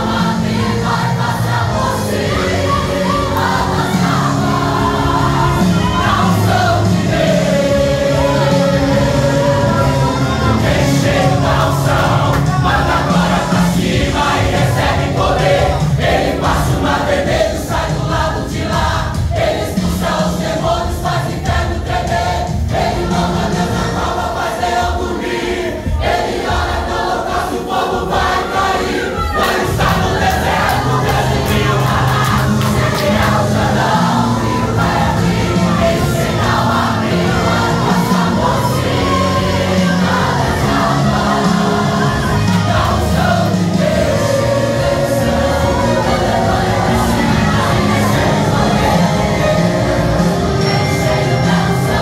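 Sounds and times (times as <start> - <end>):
congregation singing: 0.0 - 52.0
instrumental accompaniment: 0.0 - 52.0.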